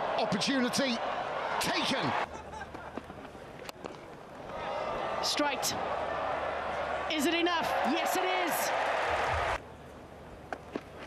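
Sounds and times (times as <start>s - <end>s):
stadium crowd noise: 0.0s - 10.1s.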